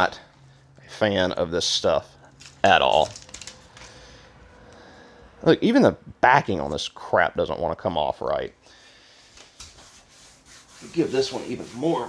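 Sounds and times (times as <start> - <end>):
hands rubbing foam on metal: 9.4 - 12.0.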